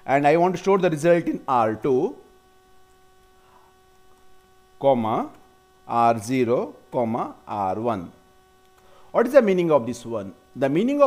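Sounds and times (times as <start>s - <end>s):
person speaking: 0.0s - 2.3s, 4.8s - 8.2s, 9.1s - 11.0s
faint electrical hum: 0.0s - 11.0s.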